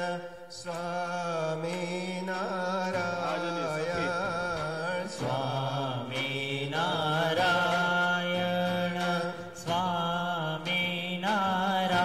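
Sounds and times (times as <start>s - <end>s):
devotional chanting in long notes: 0.0s - 12.0s.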